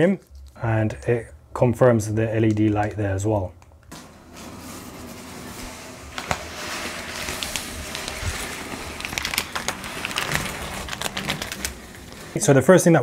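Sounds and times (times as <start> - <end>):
packaging rustling and crackling: 4.4 - 12.6.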